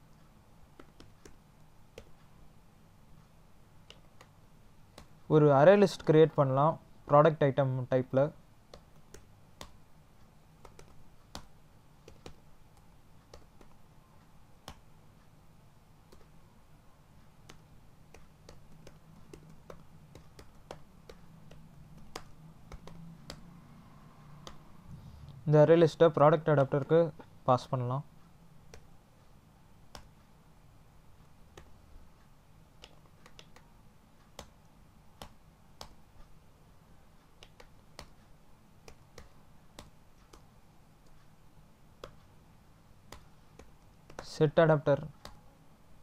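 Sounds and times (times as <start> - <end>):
faint room hum: 0.0 - 46.0
keyboard and mouse clicks: 0.1 - 2.3, 3.8 - 5.2, 8.7 - 9.8, 10.6 - 13.8, 16.1 - 16.4, 17.2 - 23.6, 24.3 - 24.7, 28.7 - 28.9, 29.9 - 30.3, 31.5 - 31.8, 32.8 - 36.4, 37.2 - 41.4, 42.0 - 42.4, 43.0 - 44.4, 45.0 - 45.5.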